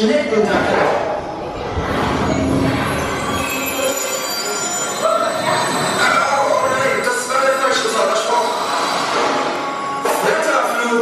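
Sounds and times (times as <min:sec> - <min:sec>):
faint high squeal: 0:01.7 - 0:10.0.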